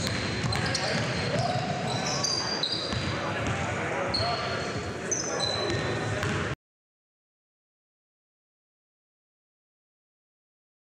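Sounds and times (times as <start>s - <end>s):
basketball bouncing: 0.0s - 1.8s, 2.9s - 3.6s, 5.7s - 6.4s
sneakers squeaking on court: 0.0s - 6.5s
players' voices: 0.3s - 6.6s.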